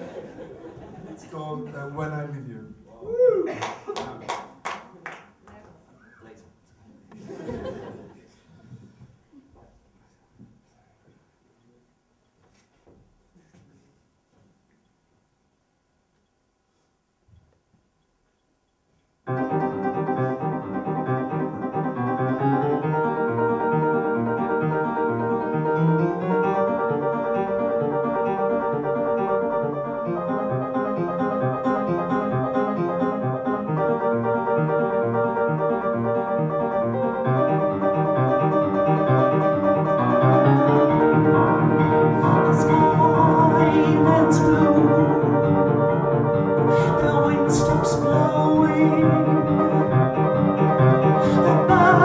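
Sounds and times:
solo piano playing: 19.3 - 52.0.

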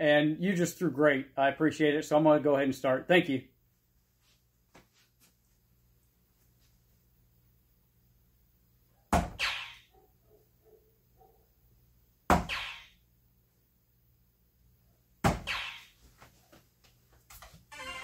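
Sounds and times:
darts thunking into dartboard: 9.1 - 9.8, 12.3 - 12.9, 15.2 - 16.0
dartboard hit sound effect: 9.2 - 9.8, 12.3 - 13.0, 15.2 - 15.9.

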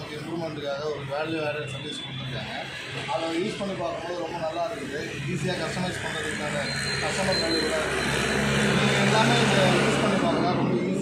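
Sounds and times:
man talking: 0.0 - 8.0.

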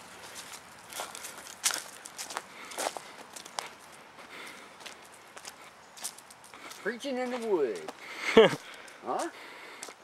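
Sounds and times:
footsteps on dry leaves: 0.0 - 10.0.

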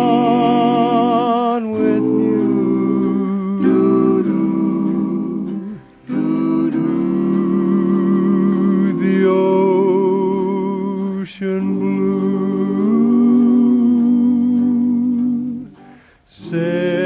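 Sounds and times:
country-western band music: 0.0 - 17.0.

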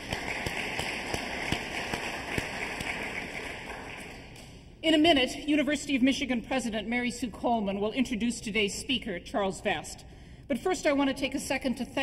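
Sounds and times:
audience applauding: 0.0 - 4.4.

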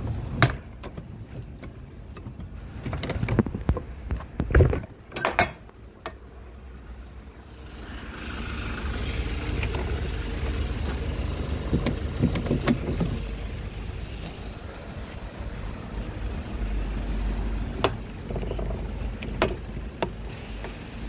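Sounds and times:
truck engine rumbling: 0.0 - 21.0.

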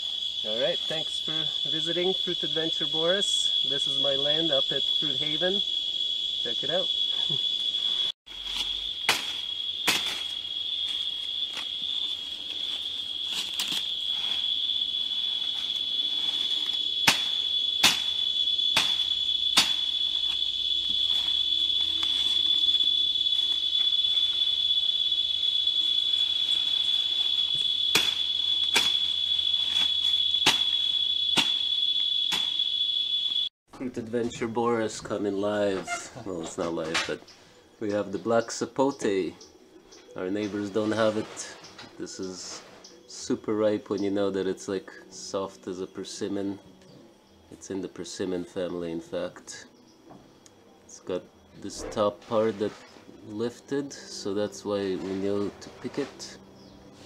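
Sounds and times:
high-pitched insect drone: 0.0 - 33.5, 37.5 - 57.0
machete chopping plant stems: 8.4 - 10.4, 13.3 - 13.9, 16.4 - 20.0, 27.9 - 31.7, 32.3 - 32.6.

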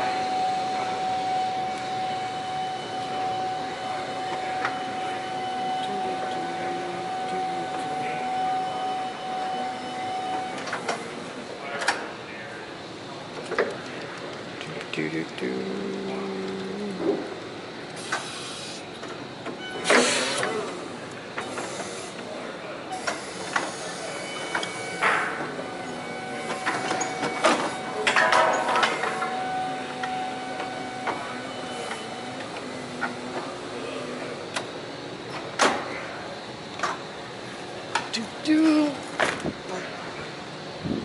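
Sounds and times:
faint whine: 0.0 - 11.7
forklift hydraulics hissing: 17.9 - 19.0, 19.7 - 28.0.

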